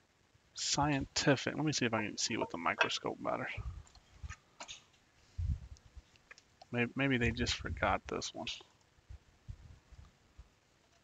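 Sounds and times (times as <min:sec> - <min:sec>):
faint clicks: 0:03.8 - 0:05.0, 0:05.7 - 0:06.8.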